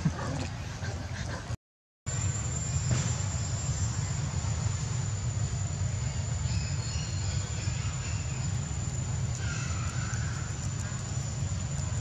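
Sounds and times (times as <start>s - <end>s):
high-pitched whine: 2.1s - 12.0s
steady low rumble: 2.1s - 12.0s.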